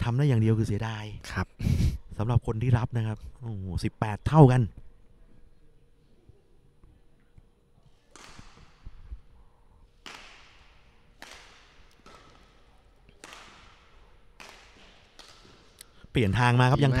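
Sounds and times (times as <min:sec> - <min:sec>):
racket hitting shuttlecock: 0:08.0 - 0:15.8.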